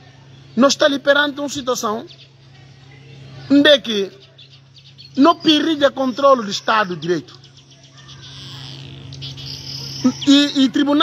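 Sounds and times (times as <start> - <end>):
insects chirring: 0.0 - 11.0
low steady hum: 0.0 - 11.0.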